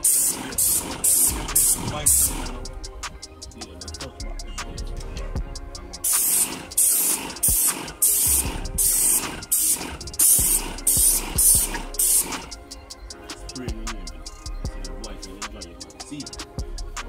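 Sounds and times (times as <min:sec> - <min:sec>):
paint sprayer hissing bursts: 0:00.0 - 0:02.6, 0:06.0 - 0:12.6
music: 0:00.0 - 0:17.0.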